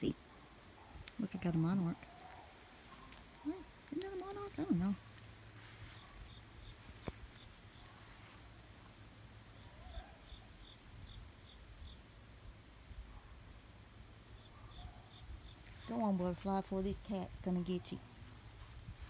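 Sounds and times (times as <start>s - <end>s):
insects chirping: 0.0s - 19.0s
lower insect chirping: 0.0s - 19.0s.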